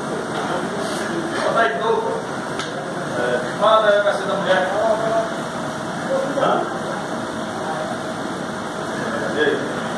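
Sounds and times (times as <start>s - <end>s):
mechanical hum: 0.0s - 9.9s.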